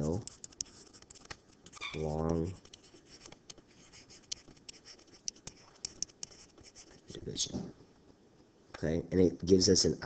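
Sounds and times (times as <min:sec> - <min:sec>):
stylus tapping and scratching: 0:00.0 - 0:07.2.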